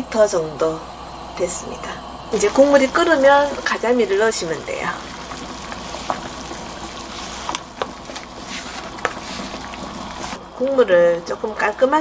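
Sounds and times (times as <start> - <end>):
soup boiling and bubbling: 0.1 - 12.0.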